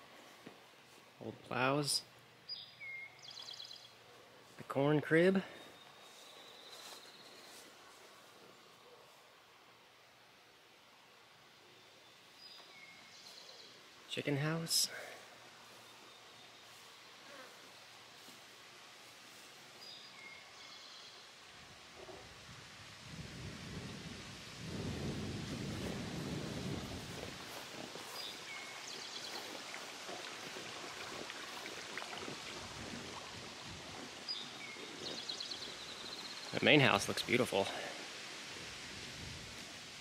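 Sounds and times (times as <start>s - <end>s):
wind gusting over microphone: 22.2s - 28.7s, 32.1s - 36.1s.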